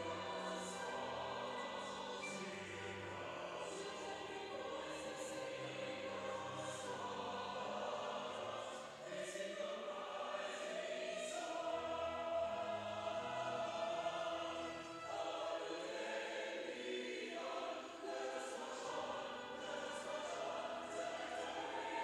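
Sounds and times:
group singing a slow hymn: 0.0 - 22.0.

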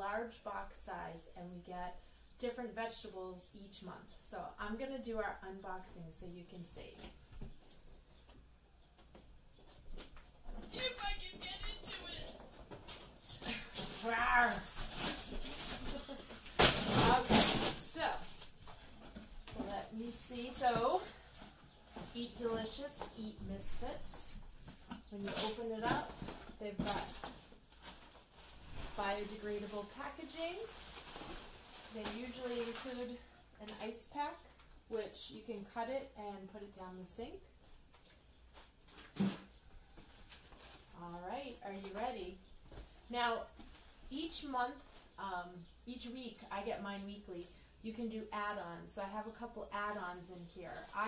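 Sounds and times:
woman's voice: 0.0 - 7.0, 13.4 - 14.7, 17.0 - 18.3, 19.6 - 21.2, 22.1 - 24.4, 25.1 - 27.2, 29.0 - 30.7, 31.9 - 37.4, 41.0 - 42.4, 43.1 - 51.0
cardboard rustling: 9.6 - 23.2
packing tape ripping: 13.6 - 18.5.

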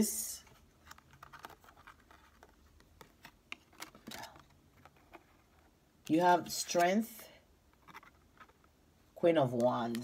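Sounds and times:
cards clicking and scratching: 0.6 - 5.8, 7.8 - 8.8.

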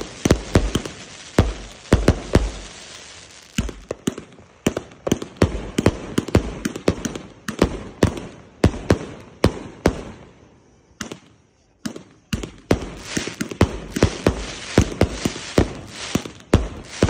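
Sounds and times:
fireworks bangs: 0.0 - 17.0
fireworks crackling: 0.0 - 17.0.

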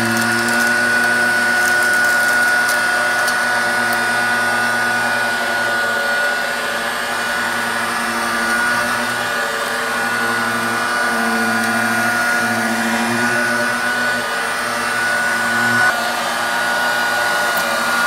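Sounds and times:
handheld vacuum running on carpet: 0.0 - 18.0.

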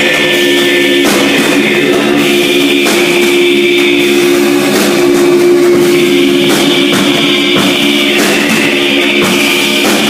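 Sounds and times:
live band droning chord: 0.0 - 10.0
sharp hits: 0.0 - 10.0.

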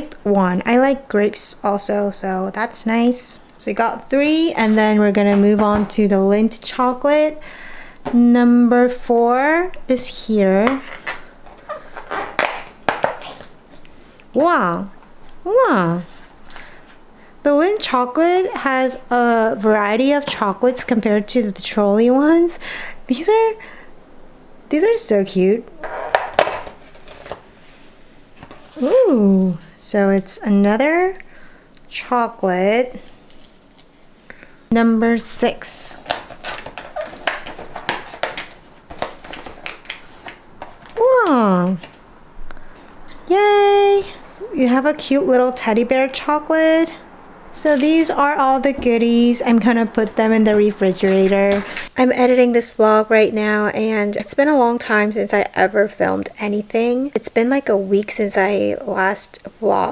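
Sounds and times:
cardboard clicking and crackling: 10.6 - 13.6, 35.9 - 41.0.

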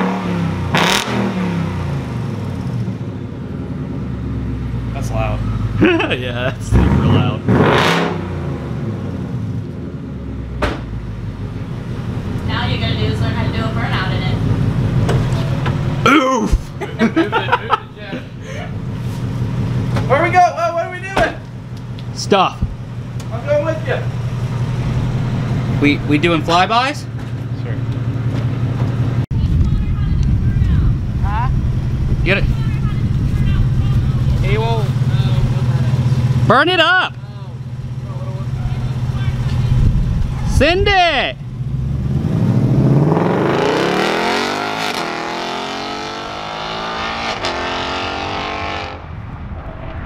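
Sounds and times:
loud car engine idling: 9.7 - 40.4.

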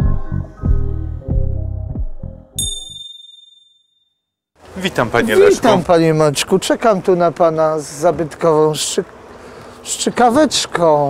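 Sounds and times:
background music: 0.0 - 2.8
bright bell ding: 2.6 - 4.1.

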